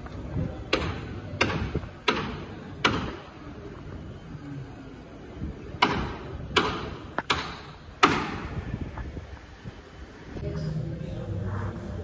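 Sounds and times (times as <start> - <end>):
hammer bangs with echo: 0.7 - 3.2, 5.8 - 8.5.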